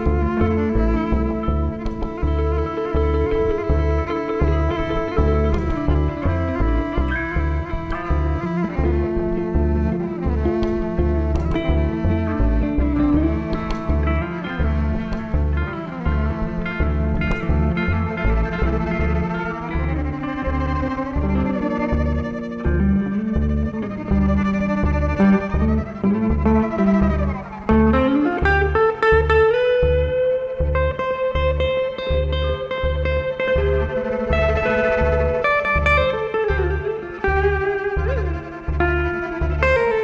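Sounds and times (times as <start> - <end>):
bowed violin: 0.0 - 40.0
electric guitar: 0.0 - 40.0
plucked upright bass: 0.0 - 40.0.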